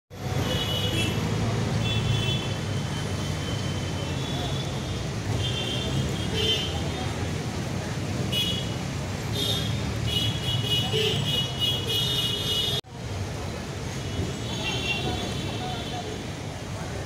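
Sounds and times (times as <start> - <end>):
traffic rumble: 0.1 - 17.0.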